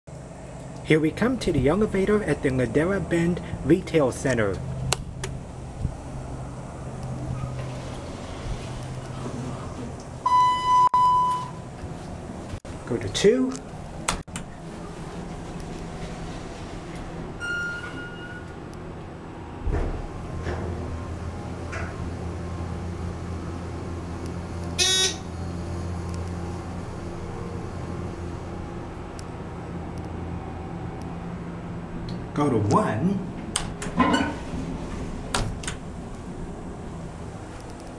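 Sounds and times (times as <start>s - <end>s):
elevator pump motor hum: 0.1s - 37.9s
short electronic beep: 10.2s - 11.6s
elevator chime beep: 10.2s - 11.7s, 17.3s - 18.7s, 21.7s - 28.5s.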